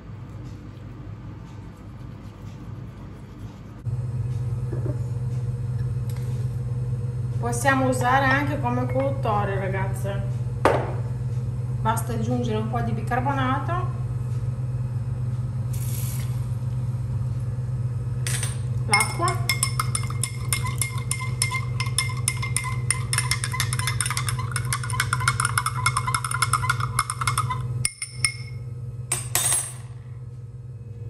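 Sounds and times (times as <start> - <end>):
steady low hum: 0.0 - 31.0
spoon clinking against glass: 18.3 - 28.6.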